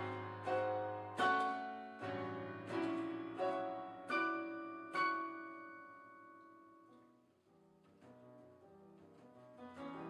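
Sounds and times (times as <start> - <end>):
piano chord ringing: 0.0 - 7.0
soft piano notes: 0.0 - 10.0.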